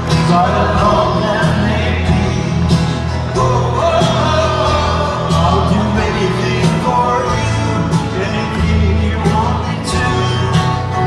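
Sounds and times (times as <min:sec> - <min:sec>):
acoustic guitars: 0:00.0 - 0:11.0
bass line: 0:00.0 - 0:11.0.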